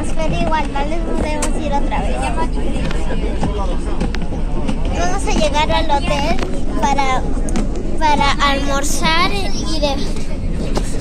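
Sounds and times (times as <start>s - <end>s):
girl's voice: 0.0s - 2.7s, 4.9s - 7.3s, 8.0s - 10.3s
bus engine and road noise: 0.0s - 11.0s.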